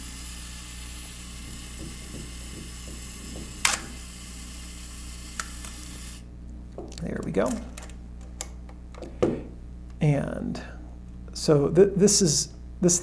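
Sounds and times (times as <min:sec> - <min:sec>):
camera self-timer whirring: 0:00.0 - 0:06.3.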